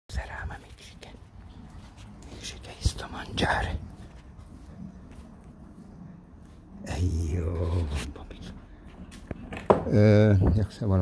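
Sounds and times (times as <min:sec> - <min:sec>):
person whispering: 0:00.1 - 0:04.2, 0:06.8 - 0:08.7.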